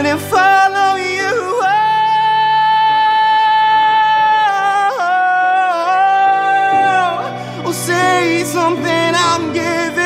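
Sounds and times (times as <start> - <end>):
person singing pop ballad: 0.0 - 10.0
steady music accompaniment: 0.0 - 10.0.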